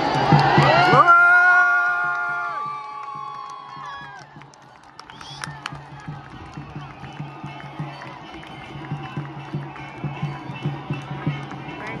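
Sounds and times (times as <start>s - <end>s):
drums beating quick rhythm: 0.2s - 12.0s
crowd voices: 4.0s - 12.0s.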